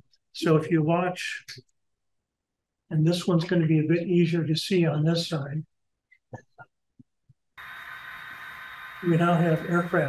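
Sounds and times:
faint high whine: 7.6 - 10.0
steady hiss: 7.6 - 10.0.

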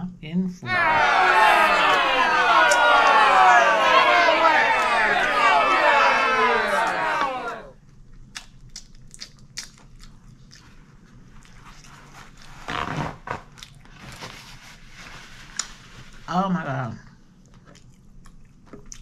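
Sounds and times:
loud overlapping voices: 0.6 - 7.7
chewing and crunching fried chicken: 7.9 - 12.7, 13.4 - 14.6, 17.1 - 19.0.

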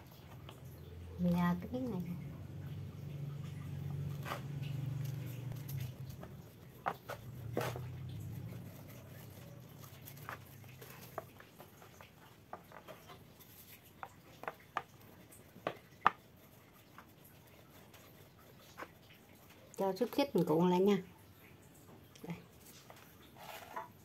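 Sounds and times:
rolling pin rumbling over bread: 3.7 - 11.8.

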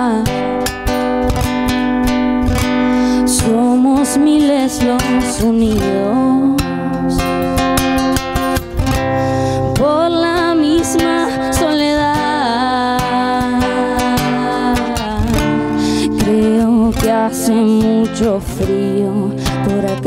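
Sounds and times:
acoustic guitar strumming: 0.0 - 20.0
person singing ballad: 0.0 - 20.0.

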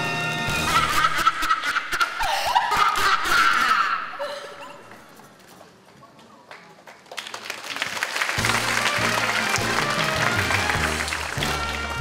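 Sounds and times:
audience laughing and cheering: 0.5 - 4.9, 8.4 - 12.0
hand claps: 6.5 - 12.0.

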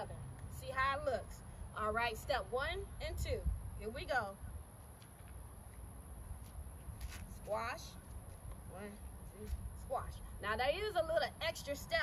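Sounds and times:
feet scuffing on ground: 6.4 - 8.6.

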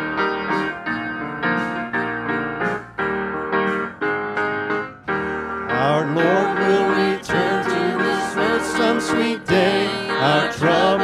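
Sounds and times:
piano playing slow chords: 0.0 - 11.0.

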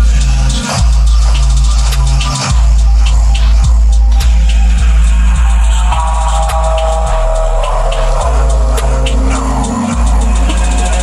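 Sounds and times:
rapid hi-hat ticks: 0.0 - 11.0
sub-bass line: 0.0 - 11.0
sustained synth pad: 1.1 - 11.0.

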